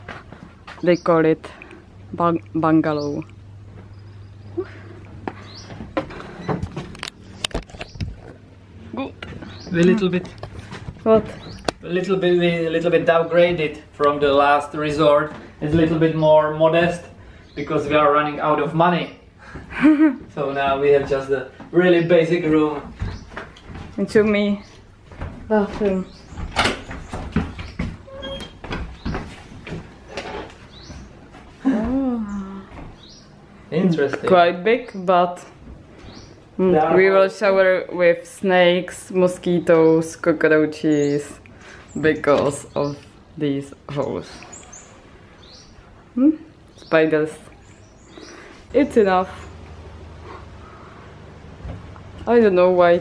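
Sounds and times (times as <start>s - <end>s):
steady low hum: 0.0s - 42.1s, 42.7s - 53.0s
door squeak: 28.0s - 29.2s.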